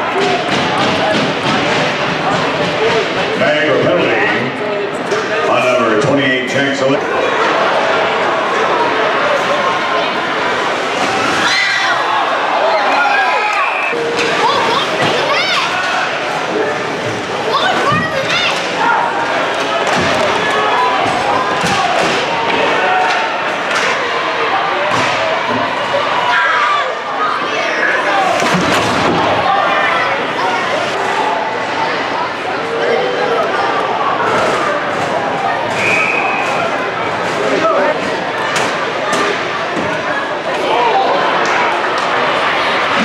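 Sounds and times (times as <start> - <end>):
busy arena: 0.0 - 43.0.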